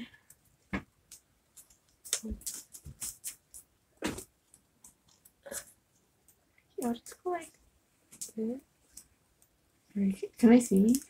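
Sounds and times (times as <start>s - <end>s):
paper folding and crinkling: 1.5s - 5.3s.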